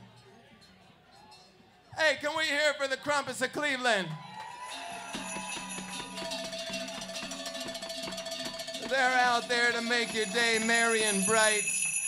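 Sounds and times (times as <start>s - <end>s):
jingle bells shaken: 4.7s - 12.0s.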